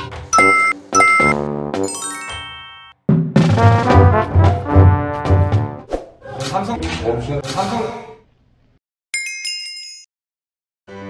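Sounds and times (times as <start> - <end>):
background music: 0.1 - 5.9.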